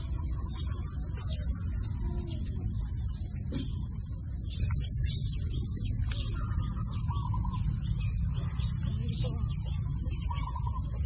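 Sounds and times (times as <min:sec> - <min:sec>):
warbling bird call: 0:00.0 - 0:08.8, 0:09.4 - 0:11.0.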